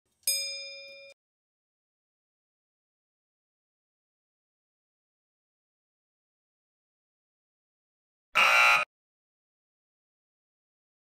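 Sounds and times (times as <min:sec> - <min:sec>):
game show buzzer: 0:08.4 - 0:08.9.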